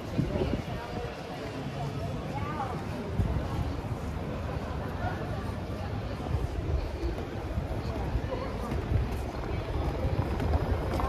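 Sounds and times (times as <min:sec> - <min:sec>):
faint voices of passers-by: 0:00.0 - 0:11.0
low street rumble: 0:00.0 - 0:11.0.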